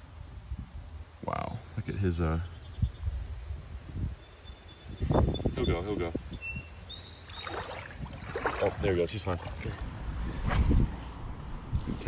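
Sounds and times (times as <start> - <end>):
water sloshing and splashing: 7.2 - 9.9.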